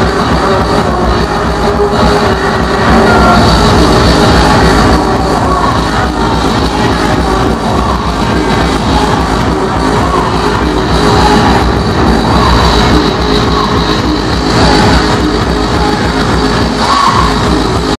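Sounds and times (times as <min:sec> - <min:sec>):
hardcore electronic dance music: 0:00.0 - 0:18.0
rapid kick-drum beat: 0:00.0 - 0:18.0.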